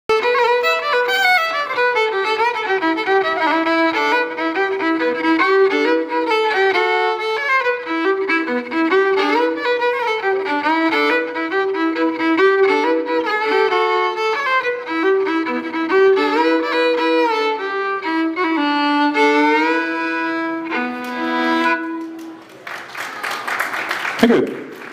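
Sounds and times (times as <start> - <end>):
solo fiddle playing: 0.1 - 22.4.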